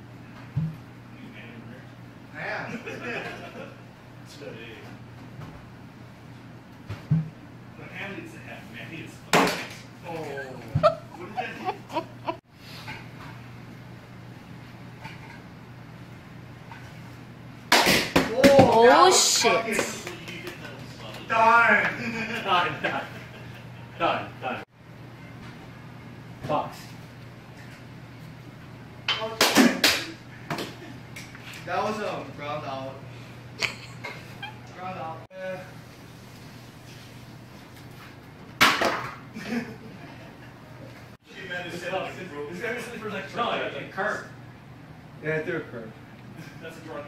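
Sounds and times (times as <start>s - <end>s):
man shouting: 18.3s - 20.0s.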